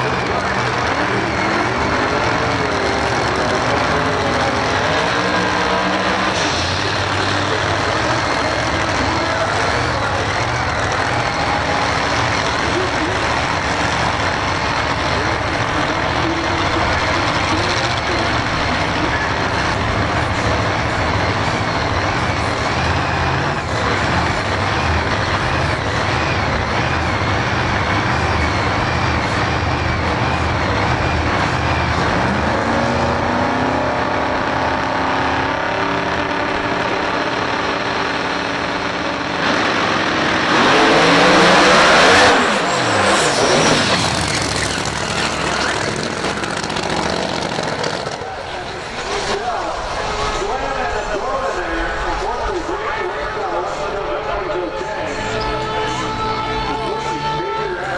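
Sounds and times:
cars accelerating at full throttle: 0.0 - 57.9
drag racing cars idling: 0.0 - 57.9.

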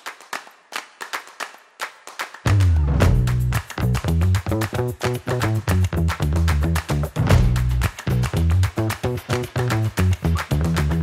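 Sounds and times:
sharp clap-like percussive hits: 0.0 - 11.0.

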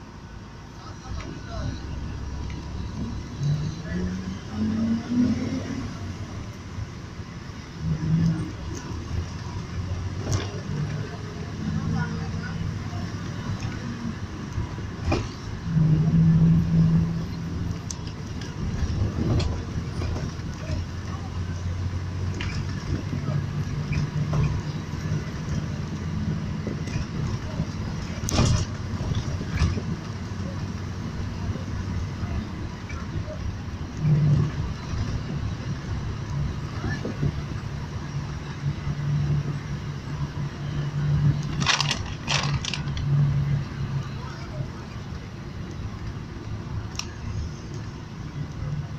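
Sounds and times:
car road noise drone: 0.0 - 48.9.

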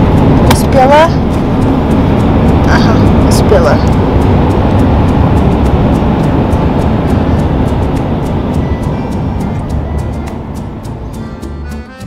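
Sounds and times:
car road and engine noise: 0.0 - 12.0
music with quick steady beat: 4.0 - 12.0.

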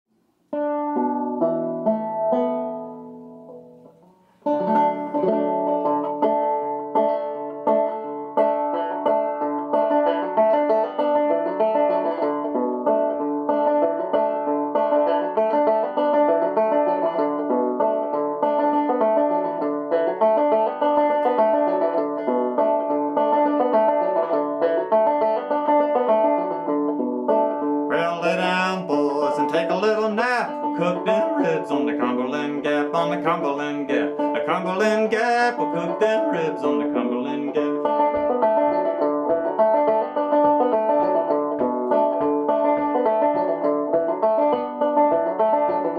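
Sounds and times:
banjo picking: 0.1 - 45.9
man singing: 27.9 - 38.0.

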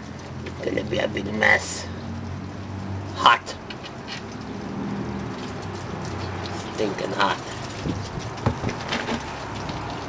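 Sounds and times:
oil splashing into container: 2.1 - 10.0.

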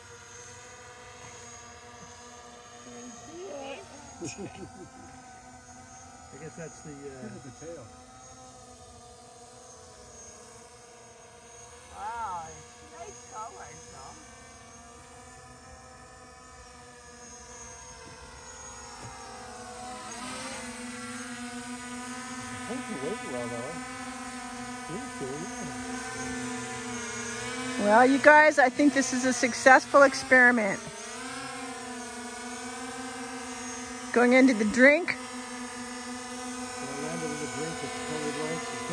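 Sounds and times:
drone propellers whining: 0.0 - 38.9.

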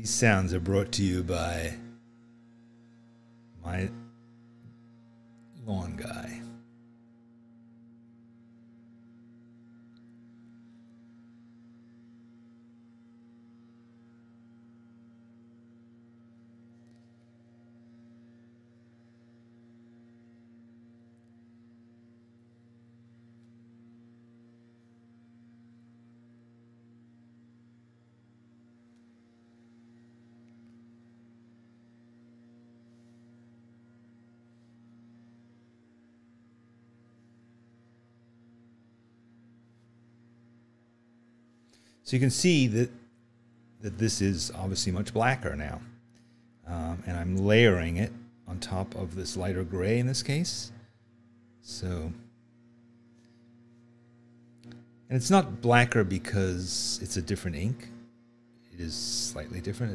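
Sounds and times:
faint low hum: 0.0 - 59.9.

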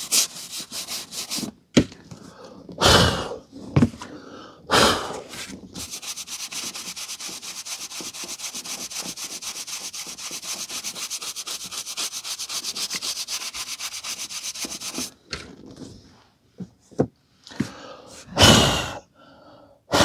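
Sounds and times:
brush bristles rasping on paper: 0.0 - 1.5, 5.3 - 15.1.

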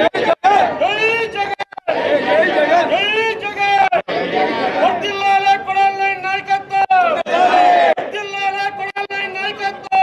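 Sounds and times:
people talking loudly: 0.0 - 10.0.

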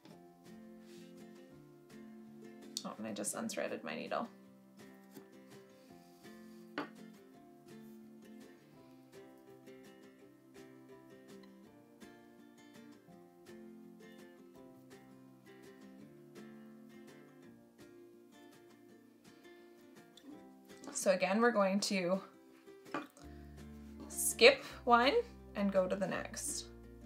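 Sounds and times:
plucked strings music: 0.0 - 27.0.

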